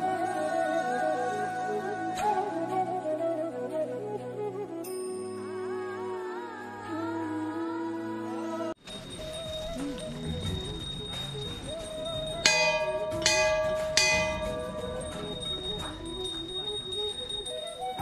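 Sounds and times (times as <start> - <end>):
background music: 0.0 - 18.0
metal temple bell ringing: 8.9 - 18.0.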